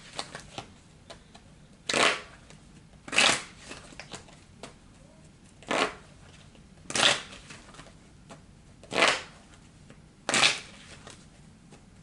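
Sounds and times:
cards shuffling: 0.0s - 1.2s.

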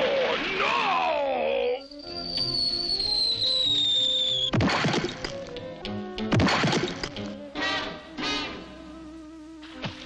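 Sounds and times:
falling whistle sliding downward: 1.8s - 4.5s
orchestral music: 5.0s - 9.8s.

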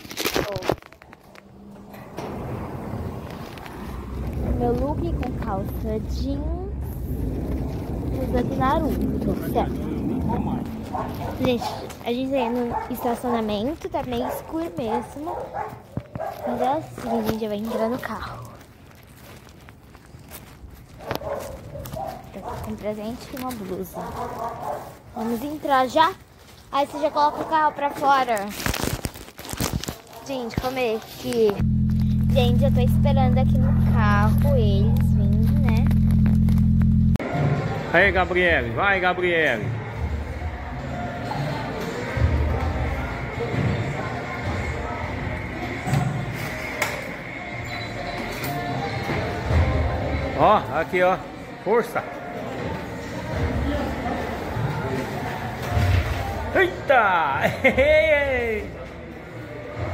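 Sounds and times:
faint footsteps: 0.5s - 28.5s.

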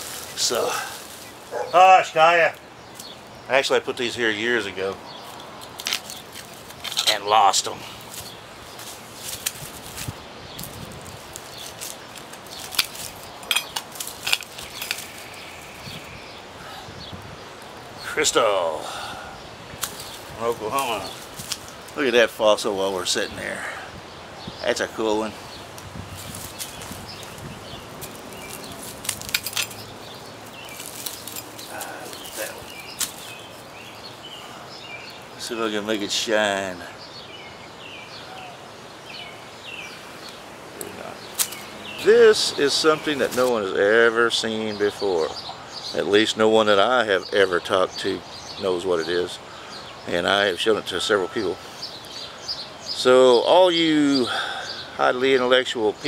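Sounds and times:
rustling leaf litter: 0.0s - 2.3s, 7.5s - 16.1s, 19.8s - 22.2s, 25.1s - 35.2s, 40.8s - 43.7s
trowel scraping dirt and stones: 5.3s - 15.7s.

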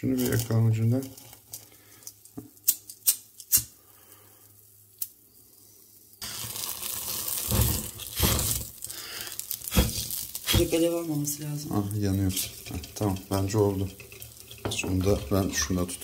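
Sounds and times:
leaves burning with crackling: 0.0s - 2.7s, 6.2s - 16.0s.

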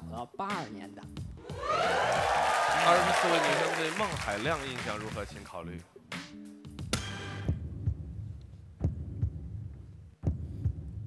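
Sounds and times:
heartbeat thumps: 8.8s - 11.0s.

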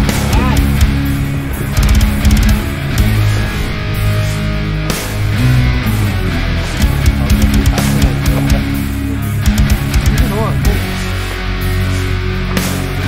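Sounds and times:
rock music: 0.0s - 13.0s.

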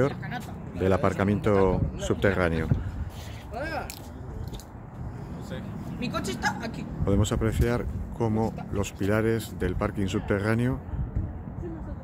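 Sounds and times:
low urban rumble: 0.0s - 12.0s.

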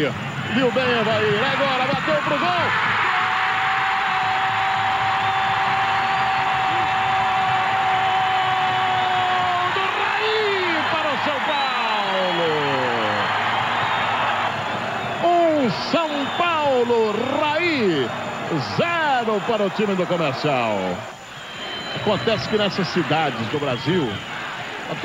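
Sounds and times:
stadium crowd noise: 0.0s - 25.0s.

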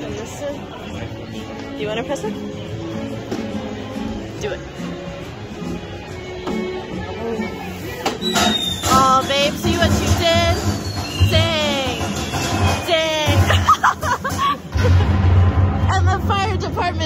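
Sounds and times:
background music: 0.0s - 17.0s
warbling whistles: 8.2s - 9.1s, 10.4s - 13.0s.

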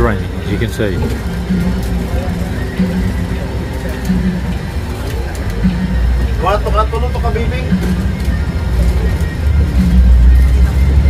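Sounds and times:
background music: 0.0s - 11.0s
bus engine and road noise: 0.0s - 11.0s
faint voices: 0.0s - 11.0s.

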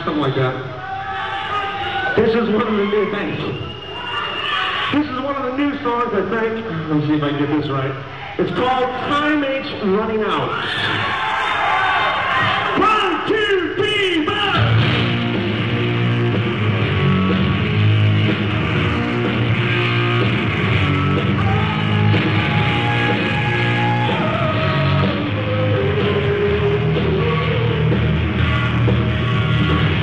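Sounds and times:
crowd yelling and cheering: 0.0s - 30.0s
live rock band playing: 14.2s - 30.0s.

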